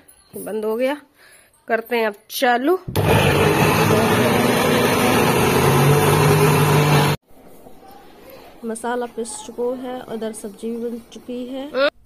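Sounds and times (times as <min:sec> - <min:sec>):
mixer grinder running: 0:02.9 - 0:07.2.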